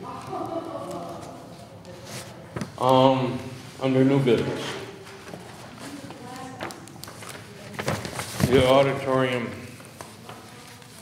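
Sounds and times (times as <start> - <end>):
faint voice murmuring: 0.0 - 2.6.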